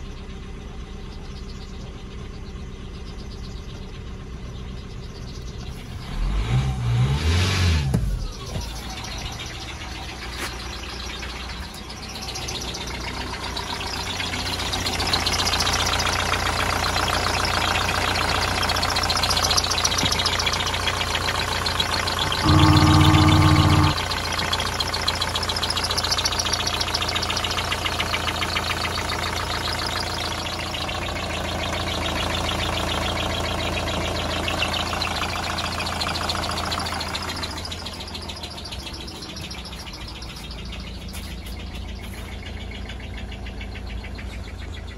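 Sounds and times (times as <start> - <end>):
diesel engine starting and idling: 0.0 - 44.9
loud steady buzzing tone: 22.2 - 24.2.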